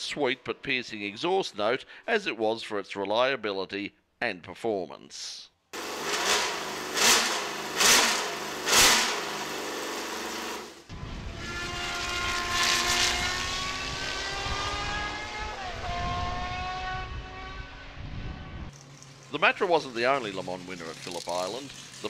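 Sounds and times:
car engine revving: 5.8s - 22.0s
racing car passing at speed: 11.0s - 18.7s.

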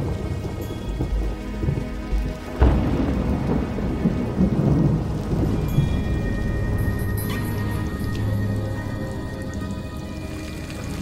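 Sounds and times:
low musical backing: 0.0s - 11.0s
rain falling: 0.0s - 11.0s
thunder: 2.6s - 8.3s.

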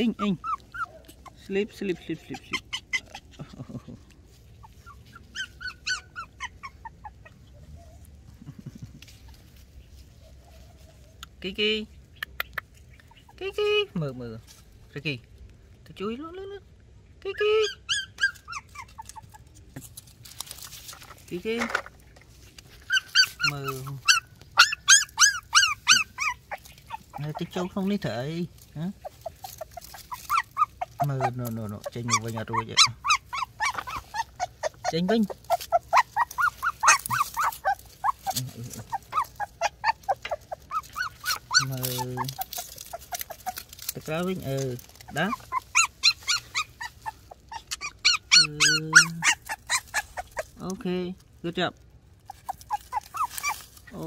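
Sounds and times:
puppy whimpering: 0.0s - 8.1s, 17.3s - 19.5s, 22.8s - 50.6s, 52.2s - 54.0s.

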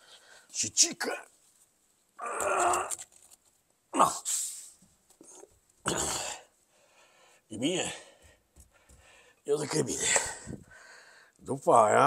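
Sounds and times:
man groaning: 2.2s - 3.0s, 4.0s - 4.3s, 5.9s - 6.5s.

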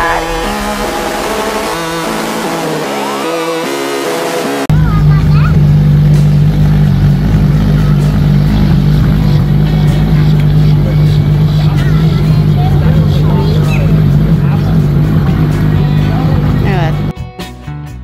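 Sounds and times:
car engine low drone: 0.0s - 17.1s.

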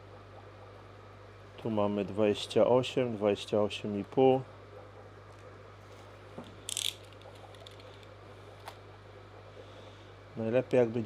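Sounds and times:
steady low hum: 0.0s - 11.0s
tape measure clicks: 6.7s - 8.1s.

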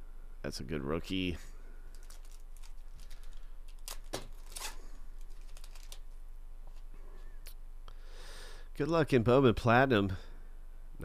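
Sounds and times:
foil card pack crinkling: 1.9s - 6.1s.

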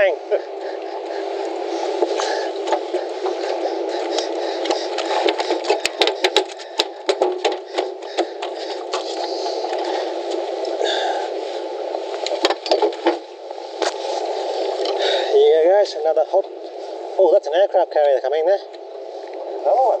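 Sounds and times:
knocks and rattles on boat deck: 2.0s - 10.0s, 12.4s - 13.3s.

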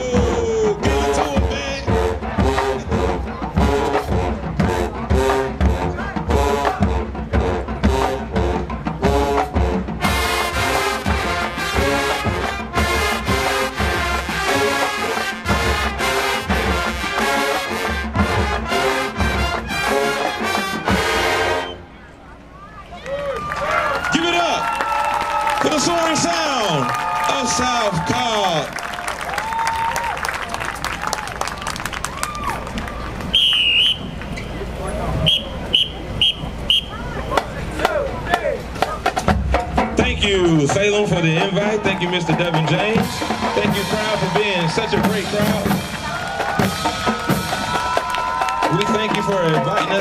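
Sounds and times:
marching band playing: 0.0s - 22.7s, 23.6s - 50.0s
crowd noise: 0.0s - 50.0s.

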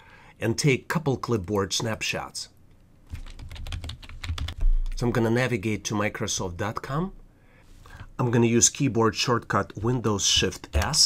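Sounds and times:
keyboard typing: 3.1s - 5.0s.

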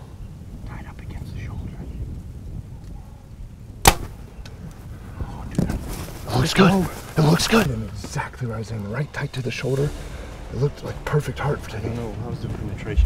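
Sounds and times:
bow string snap: 3.8s - 4.6s.

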